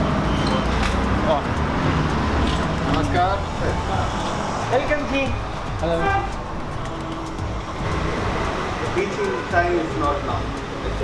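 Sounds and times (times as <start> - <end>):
city street traffic rumble: 0.0 - 11.0
voices: 2.7 - 11.0.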